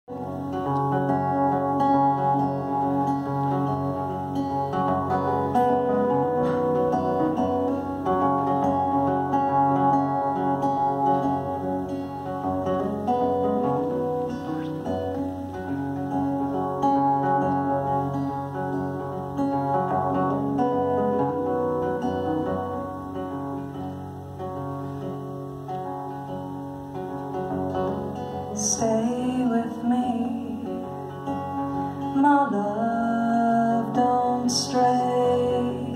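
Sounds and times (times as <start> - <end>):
acoustic guitar playing: 0.0 - 35.9.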